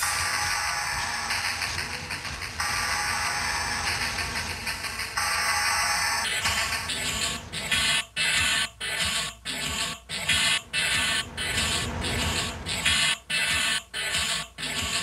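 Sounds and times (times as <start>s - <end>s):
rhythmic chopped electronic noise: 0.0s - 15.0s.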